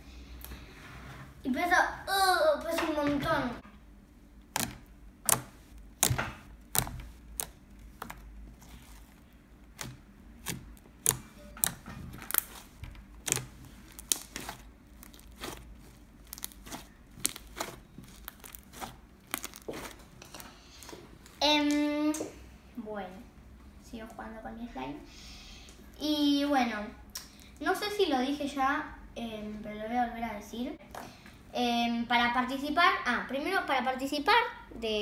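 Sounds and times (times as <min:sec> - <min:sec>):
sticky slime pops and clicks: 0:04.5 - 0:08.2, 0:09.8 - 0:12.6, 0:13.2 - 0:15.6.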